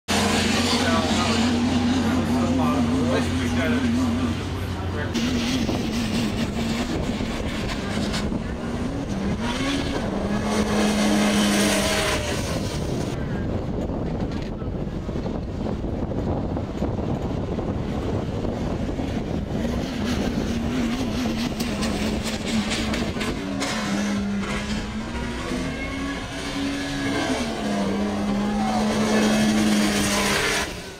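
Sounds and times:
engine drone: 0.1 - 30.9
faint voices: 0.2 - 5.8, 24.1 - 30.7.

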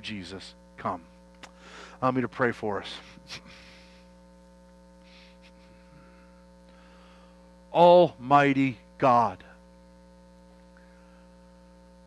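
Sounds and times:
faint electrical mains hum: 0.0 - 12.0
breath-like sound: 1.6 - 2.0, 5.0 - 7.5.

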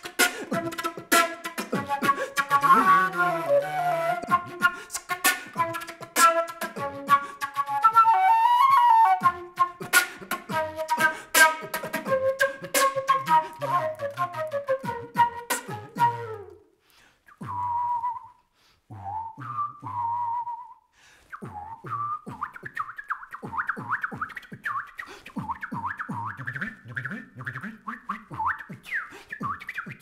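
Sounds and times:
beatboxing rhythm: 0.0 - 3.4, 4.2 - 7.8, 9.2 - 16.2, 21.3 - 30.0
mouth whistling: 0.0 - 30.0.

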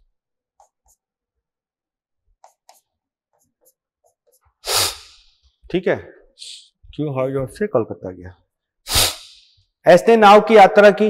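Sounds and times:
marker tapping on board: 2.4 - 4.5
man's sneeze-like breath burst: 4.6 - 5.3, 8.9 - 9.5.

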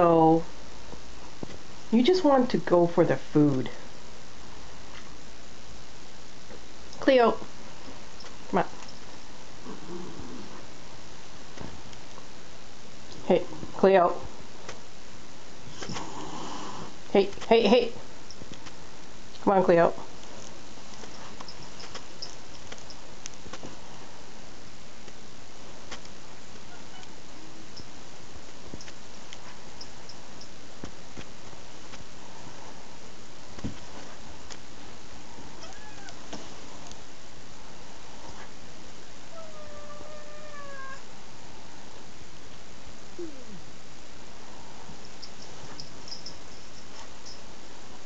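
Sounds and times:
background hiss: 0.0 - 48.0
faint ticks and taps: 28.6 - 32.0
cat meowing: 35.6 - 36.2, 39.4 - 41.0.

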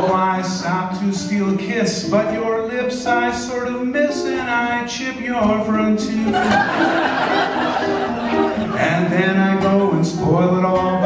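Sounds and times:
man singing: 0.0 - 7.0, 8.3 - 11.0
ukulele strumming: 0.0 - 11.0.

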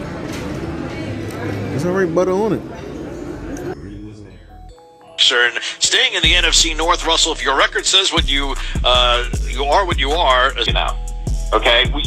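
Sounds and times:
muffled voices: 0.0 - 12.0.

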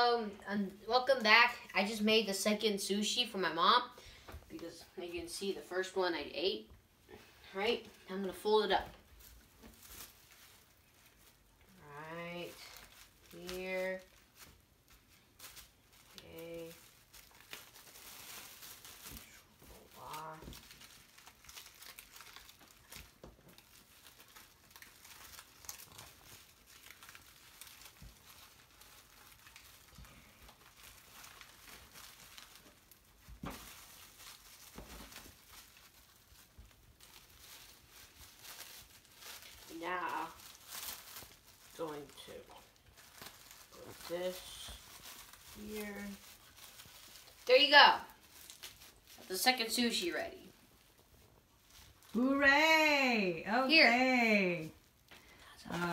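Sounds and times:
plastic wrap crinkling: 0.0 - 55.9.

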